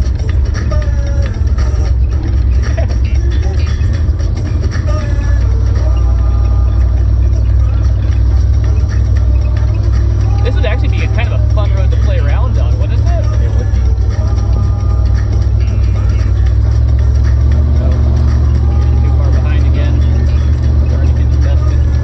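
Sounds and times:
indistinct voices: 0.0s - 22.0s
wind and driving rumble: 0.0s - 22.0s.

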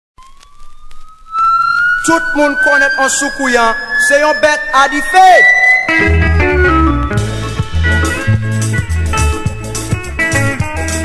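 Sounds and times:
siren-like rising tone: 0.2s - 8.2s
low musical accompaniment: 1.3s - 11.0s.

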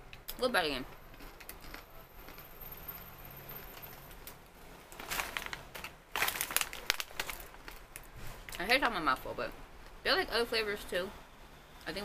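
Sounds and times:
crunchy snack being chewed: 1.1s - 2.5s
plastic snack bag crinkling: 1.1s - 2.6s, 3.6s - 8.7s.

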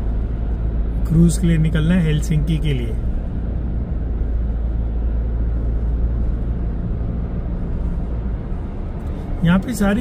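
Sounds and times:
car engine rumble: 0.0s - 10.0s
tyres on the road: 0.0s - 10.0s.

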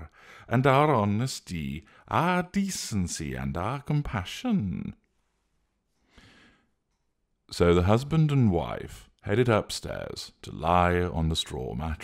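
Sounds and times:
faint breath in: 0.1s - 0.5s, 5.2s - 6.8s.

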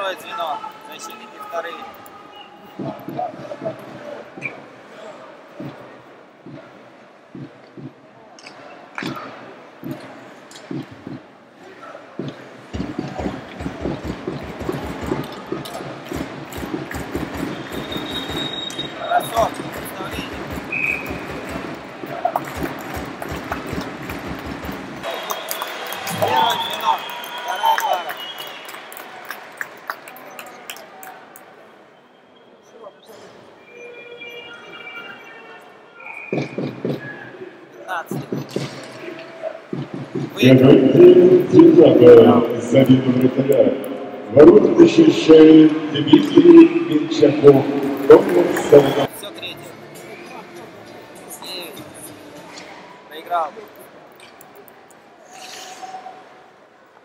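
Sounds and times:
arena crowd noise: 0.0s - 57.0s
whistles: 4.4s - 4.7s, 17.2s - 21.6s, 25.0s - 29.0s, 30.4s - 37.4s
low thumping beat: 5.6s - 6.7s, 7.3s - 8.0s, 10.6s - 11.2s, 12.2s - 18.4s, 36.3s - 37.0s, 38.1s - 38.8s, 39.7s - 43.6s.

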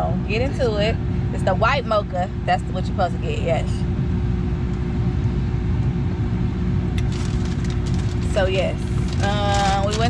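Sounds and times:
car cabin rumble: 4.2s - 10.0s.

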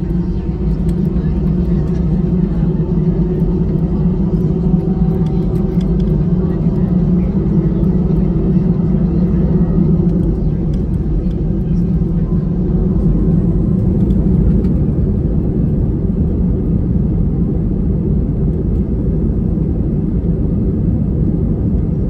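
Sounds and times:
aircraft engine noise: 0.0s - 22.0s.

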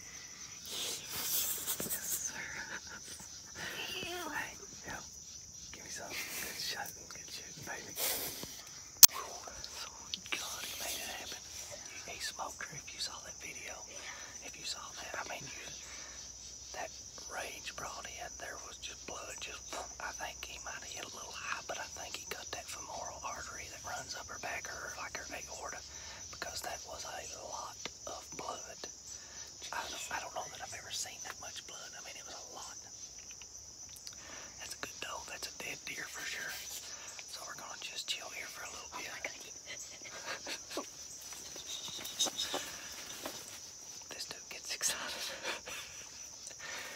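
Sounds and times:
insects chorus: 0.0s - 46.9s
people whispering excitedly: 0.6s - 8.1s, 9.0s - 32.9s, 34.5s - 43.2s, 44.0s - 46.7s.

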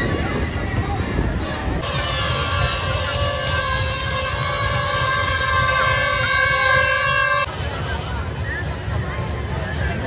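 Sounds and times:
crowd voices: 0.0s - 10.0s
fairground noise: 0.0s - 10.0s
steady horn-like tone: 1.4s - 8.1s.

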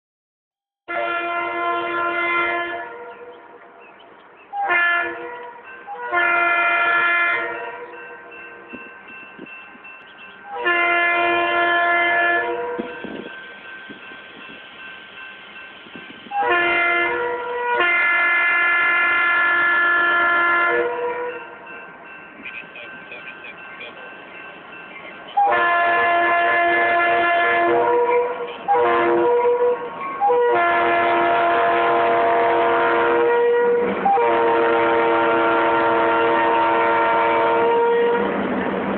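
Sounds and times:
locomotive air horn blasts: 0.9s - 3.8s, 4.5s - 8.3s, 10.4s - 14.9s, 16.2s - 21.6s, 25.3s - 38.4s
train running rumble: 2.8s - 38.9s.

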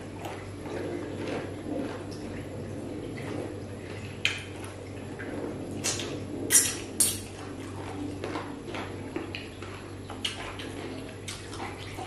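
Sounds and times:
wet chewing and mouth smacks: 0.0s - 12.0s.

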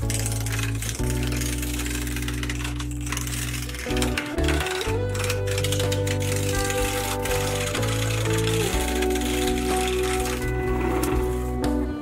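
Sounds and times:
lathe gouge scraping wood: 0.0s - 11.8s
background music with held chords: 0.0s - 12.0s.

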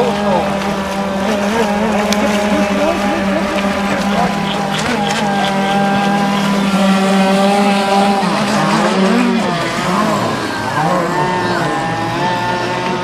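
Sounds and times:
model speedboat engine: 0.0s - 13.0s.

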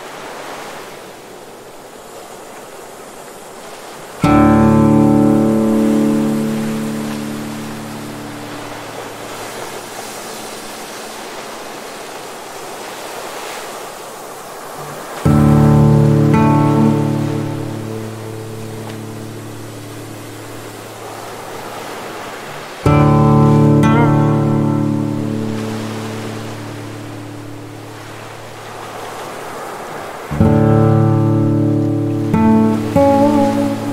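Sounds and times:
ocean surf: 0.0s - 33.9s
acoustic guitar chords: 4.2s - 9.8s, 15.2s - 21.1s, 22.8s - 28.9s, 30.3s - 33.9s.

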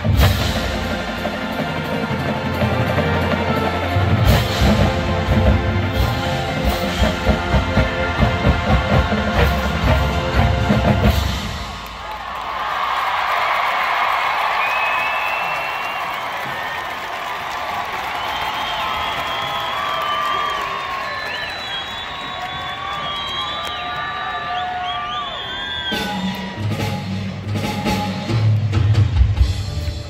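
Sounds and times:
marching band playing: 0.0s - 12.2s, 25.8s - 30.0s
crowd cheering and whooping: 11.0s - 27.2s.

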